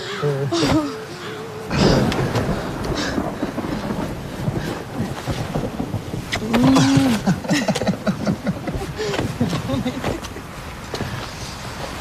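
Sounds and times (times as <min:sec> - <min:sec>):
wind blowing across microphone: 0:00.5 - 0:12.0.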